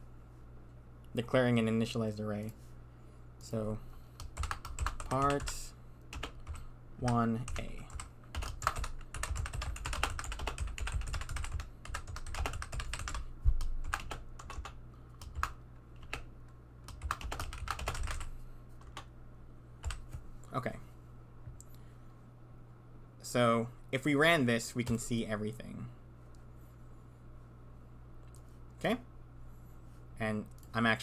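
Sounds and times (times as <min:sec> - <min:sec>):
low steady hum: 0:00.0 - 0:31.0
typing on computer keyboard: 0:04.2 - 0:16.2, 0:16.9 - 0:19.0, 0:19.8 - 0:20.1.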